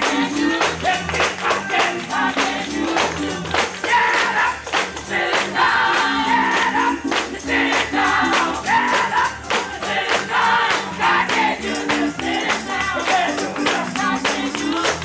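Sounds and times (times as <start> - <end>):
choir singing gospel: 0.0 - 15.0
steady beat: 0.0 - 15.0
tambourine shaking: 0.0 - 15.0.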